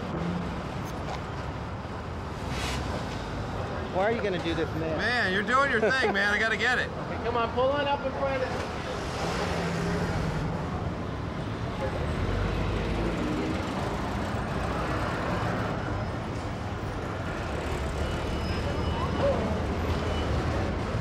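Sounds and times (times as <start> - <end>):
road traffic rumbling past: 0.0 - 21.0.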